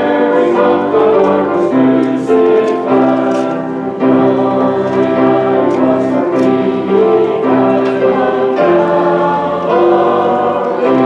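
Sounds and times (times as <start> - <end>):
congregation singing a hymn: 0.0 - 11.0.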